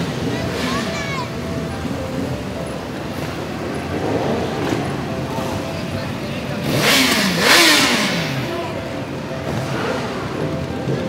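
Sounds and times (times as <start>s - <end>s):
crowd voices: 0.0s - 11.0s
motorcycles riding past: 0.0s - 11.0s.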